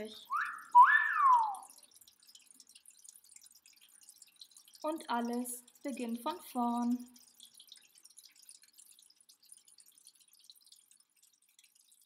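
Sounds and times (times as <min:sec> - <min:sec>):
faint dripping water: 0:00.0 - 0:12.0.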